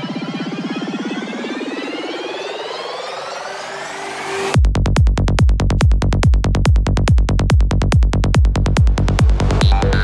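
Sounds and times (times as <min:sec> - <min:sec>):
rising synth sweeps: 0:00.0 - 0:04.6
pulsing synth bass: 0:04.5 - 0:10.0.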